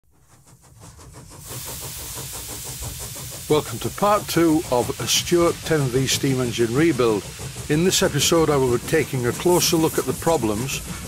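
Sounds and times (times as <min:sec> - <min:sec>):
steam engine beat: 0:00.1 - 0:11.0
steam hissing: 0:00.1 - 0:11.0.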